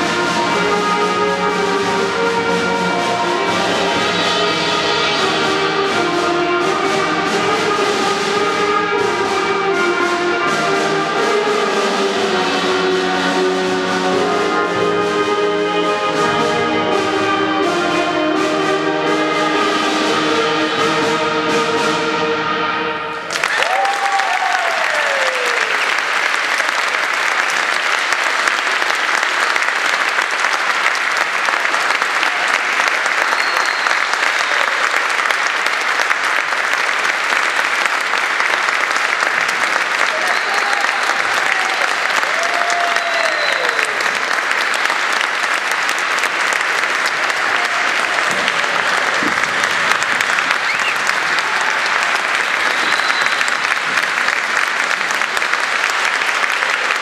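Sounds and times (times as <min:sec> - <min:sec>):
audience applauding: 0:23.2 - 0:57.0
people cheering: 0:23.2 - 0:57.0.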